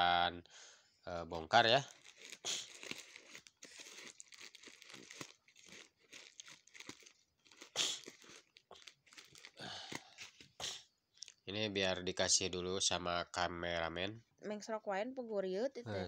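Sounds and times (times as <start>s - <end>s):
plastic wrapping crinkling: 1.6s - 10.6s.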